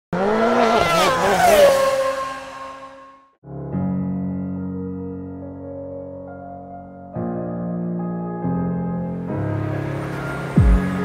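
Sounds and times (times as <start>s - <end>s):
race car engine passing: 0.2s - 3.2s.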